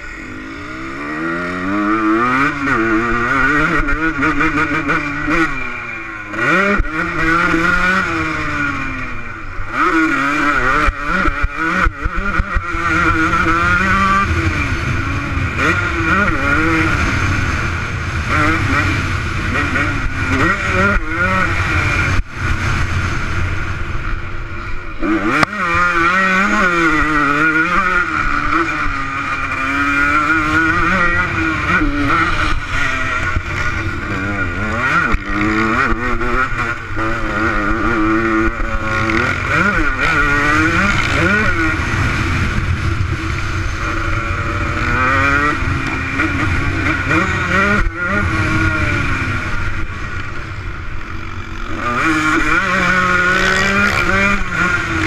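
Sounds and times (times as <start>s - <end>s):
motocross bike engine revving: 0.0s - 55.0s.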